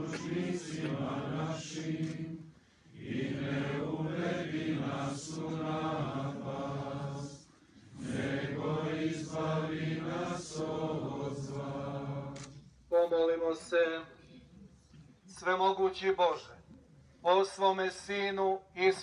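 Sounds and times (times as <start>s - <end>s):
men chanting a hymn: 0.0s - 12.4s.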